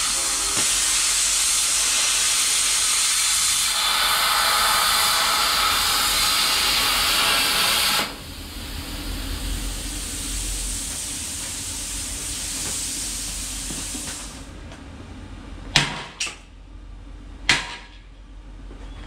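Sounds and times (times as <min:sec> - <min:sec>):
plasma cutter hissing: 0:00.0 - 0:14.5
steady hum: 0:03.6 - 0:18.9.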